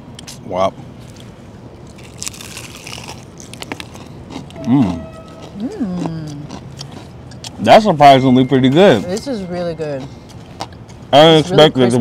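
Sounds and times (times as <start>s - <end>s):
crunching bites into fried chicken: 1.8s - 5.5s, 6.5s - 7.6s.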